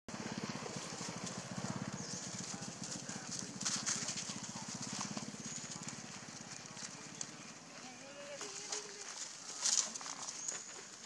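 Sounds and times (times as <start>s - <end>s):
dry leaves rustling and crackling: 0.5s - 11.0s.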